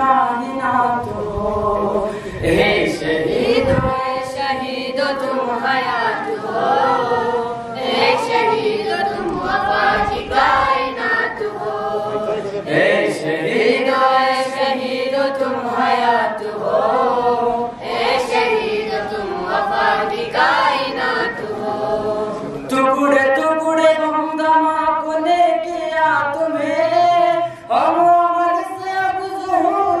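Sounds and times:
boys singing together: 0.0s - 30.0s.

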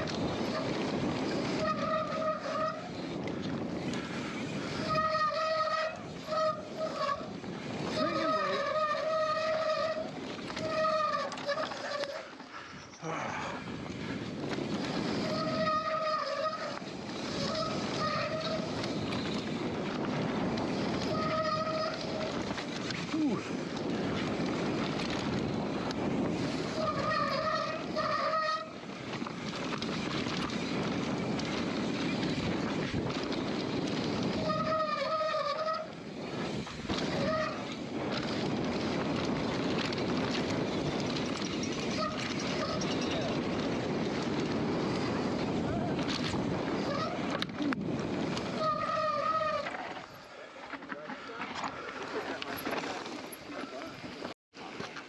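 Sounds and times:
tyre and wind rush: 0.0s - 55.0s.

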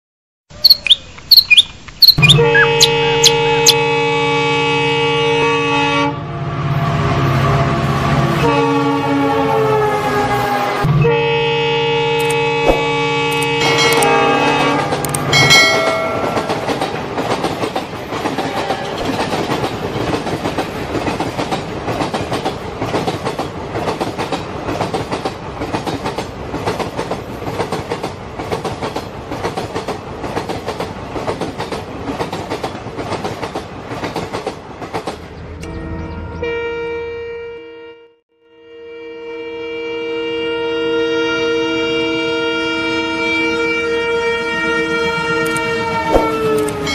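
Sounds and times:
train horn: 2.2s - 17.0s, 18.3s - 19.4s, 35.6s - 46.9s
train clickety-clack: 12.2s - 35.7s.

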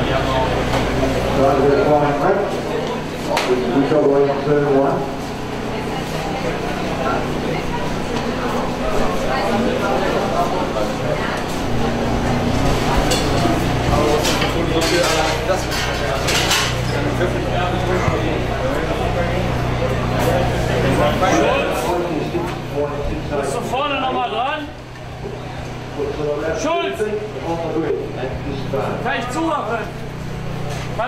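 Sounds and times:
people talking: 0.0s - 31.0s.

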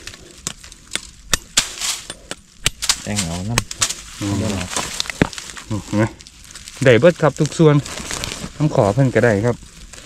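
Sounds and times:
husk rustling: 0.0s - 10.0s.

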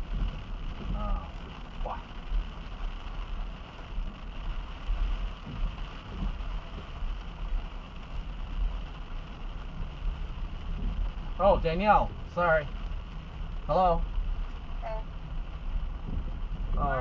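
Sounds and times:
car road and engine rumble: 0.0s - 17.0s
rain hissing on car: 0.0s - 17.0s.

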